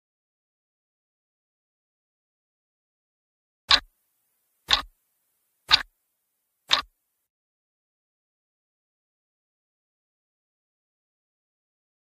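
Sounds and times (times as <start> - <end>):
clock ticking: 3.7 - 3.9, 4.7 - 4.9, 5.7 - 5.9, 6.7 - 6.9.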